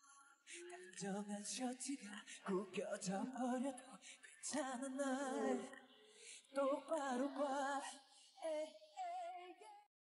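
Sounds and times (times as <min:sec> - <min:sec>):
man singing with vibrato: 0:00.6 - 0:05.8.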